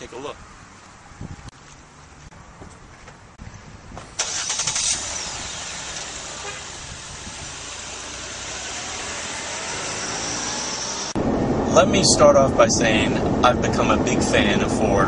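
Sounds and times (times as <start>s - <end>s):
vehicle rushing sound: 3.9s - 15.0s
motor vehicle loud burst: 4.0s - 11.7s.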